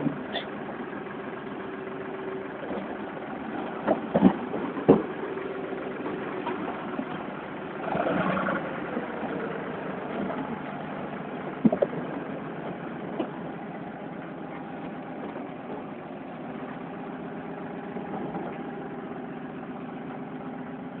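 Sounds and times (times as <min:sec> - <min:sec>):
engine idling: 0:00.0 - 0:21.0
debris knocking: 0:03.7 - 0:05.2, 0:11.5 - 0:12.2.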